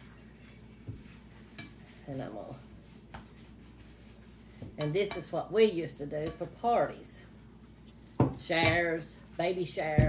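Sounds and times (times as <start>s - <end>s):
spoon stirring in a bowl: 0.0s - 6.8s.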